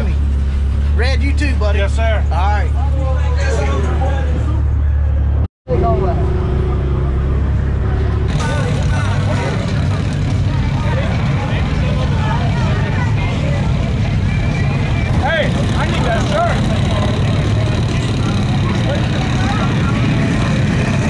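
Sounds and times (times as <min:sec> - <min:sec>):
off-road vehicle engines idling: 0:00.0 - 0:21.0
crowd of voices chattering: 0:01.6 - 0:21.0.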